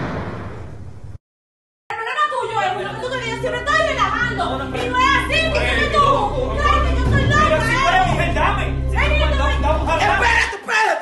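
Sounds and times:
people speaking and shouting: 0:01.9 - 0:11.0.

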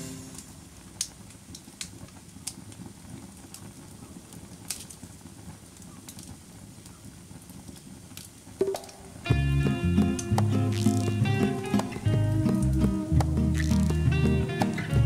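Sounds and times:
fire popping: 0:00.0 - 0:15.0
wood fire crackling: 0:00.0 - 0:15.0.

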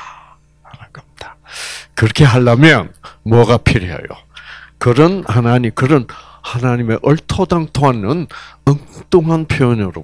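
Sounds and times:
hissing intake of breath: 0:01.4 - 0:01.9
man breathing into microphone: 0:04.3 - 0:04.8, 0:06.1 - 0:06.5.

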